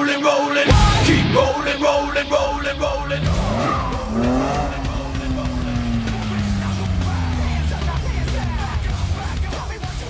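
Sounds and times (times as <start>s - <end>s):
car engine revving hard: 2.6s - 10.0s.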